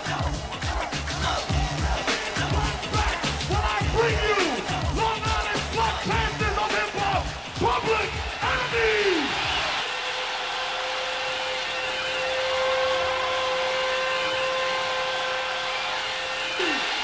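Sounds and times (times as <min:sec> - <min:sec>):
arena crowd roaring: 0:00.0 - 0:17.0.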